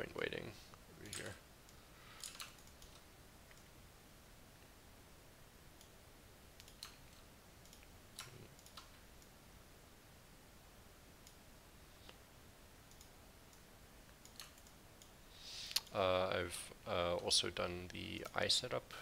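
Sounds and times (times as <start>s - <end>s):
computer mouse clicks: 1.0s - 3.7s, 6.6s - 9.3s, 12.9s - 15.1s, 15.7s - 16.0s
short breath: 15.3s - 15.8s.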